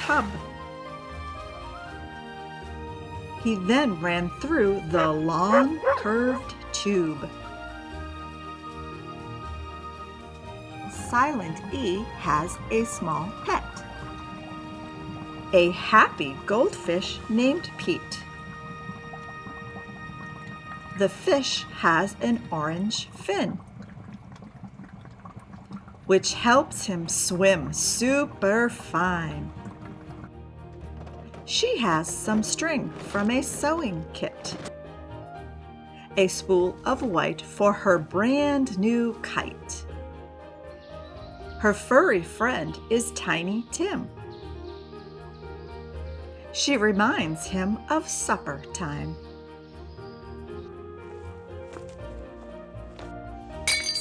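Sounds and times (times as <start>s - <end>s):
soft background music: 0.0s - 54.0s
bubbling water: 10.3s - 34.4s
mug smashing on hard floor: 53.7s - 54.0s
ringing clinks of broken pieces: 53.7s - 54.0s.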